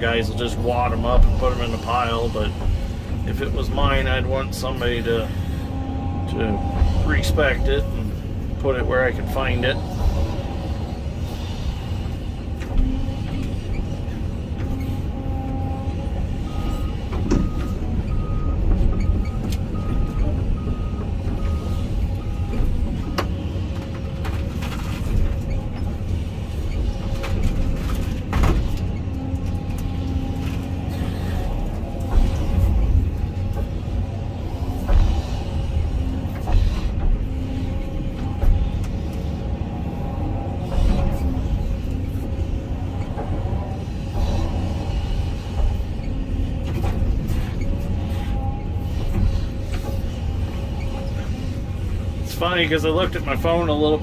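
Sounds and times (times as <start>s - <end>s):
excavator engine and hydraulics: 0.0s - 54.0s.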